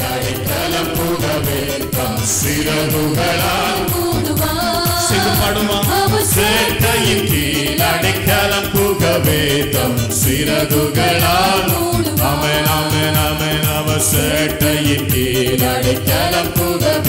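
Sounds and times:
man singing into a microphone: 0.0s - 4.2s, 4.8s - 17.0s
amplified music with steady beat: 0.0s - 17.0s.

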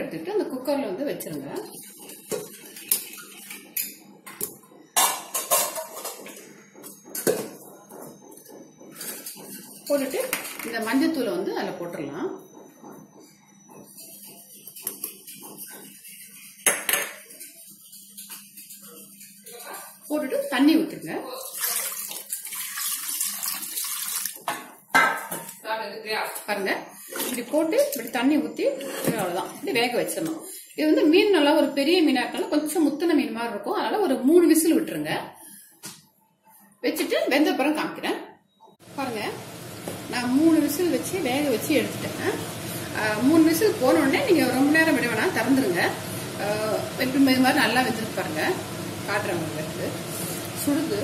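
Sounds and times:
water pouring into metal pot: 21.4s - 24.4s.

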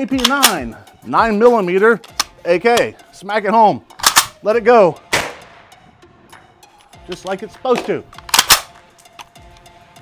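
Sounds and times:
faint background music: 0.0s - 10.0s
pistol action metallic clacks: 0.1s - 0.7s, 2.0s - 2.9s, 4.0s - 4.4s, 6.8s - 9.7s.

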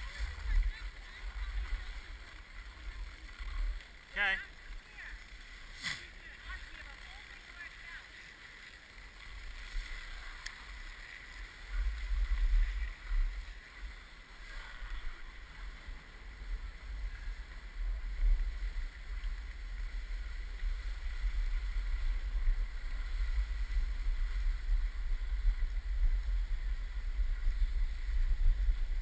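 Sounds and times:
skis sliding on packed snow: 0.0s - 29.0s
wind buffeting microphone: 11.6s - 29.0s.

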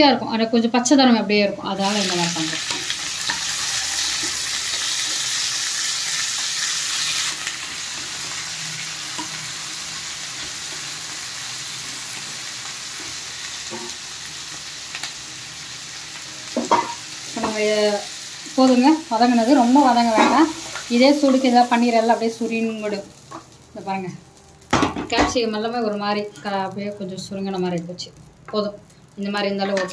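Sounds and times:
vegetables sizzling in oil: 0.8s - 29.9s.

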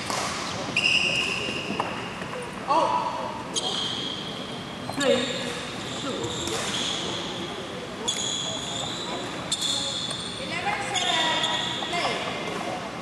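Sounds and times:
spectators chatting: 0.0s - 13.0s
court shoes squealing: 0.1s - 2.4s, 3.5s - 12.6s.

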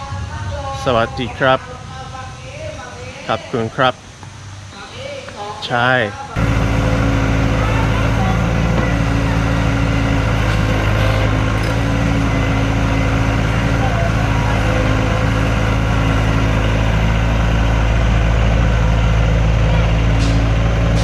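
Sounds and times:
excavator diesel engine running: 6.3s - 21.0s.

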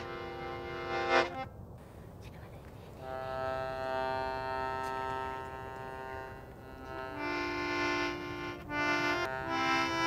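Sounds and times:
accordion holding chord: 0.0s - 1.5s, 3.0s - 10.0s.

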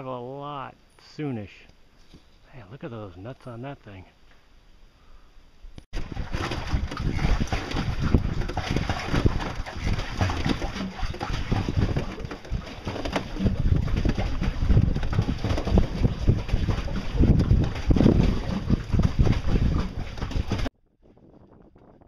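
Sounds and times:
wind rumbling on microphone: 5.7s - 22.0s
water sloshing around board: 6.0s - 20.7s.

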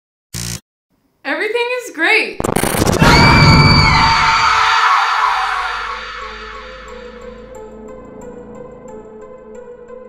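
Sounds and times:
low music drone: 6.0s - 10.0s.

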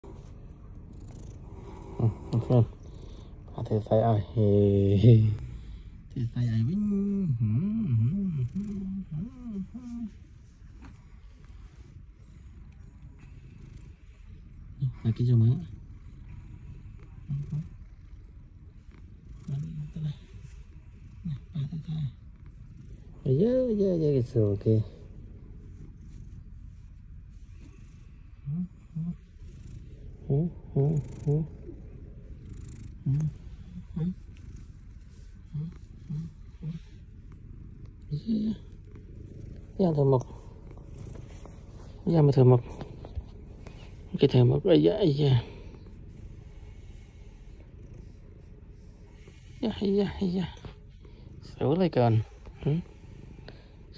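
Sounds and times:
cat purring: 0.0s - 53.9s
person humming: 6.7s - 10.2s, 17.3s - 17.7s, 28.4s - 29.2s, 30.2s - 31.8s, 33.0s - 34.2s, 35.1s - 37.0s.

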